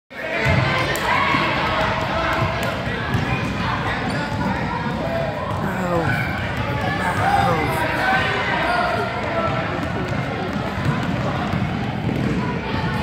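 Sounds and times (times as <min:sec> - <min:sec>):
basketballs bouncing on hardwood: 0:09.5 - 0:13.0.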